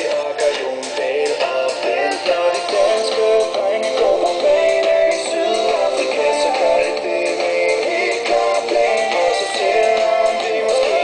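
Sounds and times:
remix music with beat: 0.0s - 11.0s.

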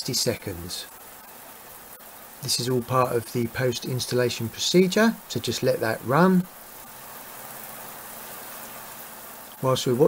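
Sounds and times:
shower water spraying: 0.0s - 10.0s.

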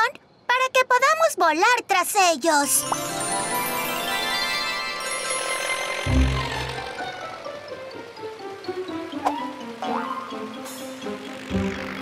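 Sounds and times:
shimmering magical sound effect: 2.7s - 8.5s
cartoon music: 2.7s - 12.0s.

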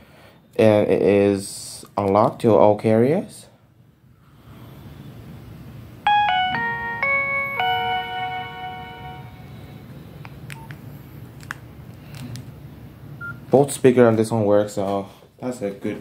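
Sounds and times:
phone power-on melody: 6.1s - 10.0s.

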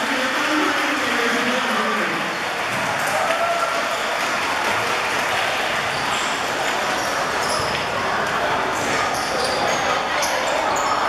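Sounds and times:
audience applauding: 2.2s - 6.8s.

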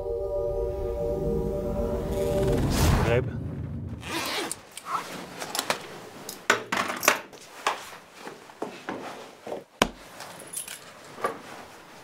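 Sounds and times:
zipper pulled: 4.0s - 5.7s
fabric rustling: 4.0s - 6.4s, 7.3s - 12.0s.

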